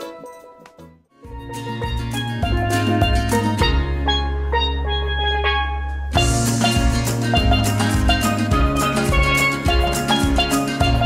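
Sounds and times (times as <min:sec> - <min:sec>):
steel pan ringing notes: 0:01.3 - 0:11.0.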